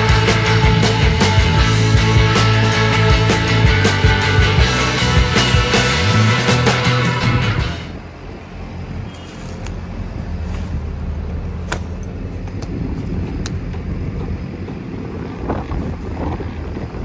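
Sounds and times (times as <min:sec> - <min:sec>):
diesel engine idling: 0:00.0 - 0:15.3.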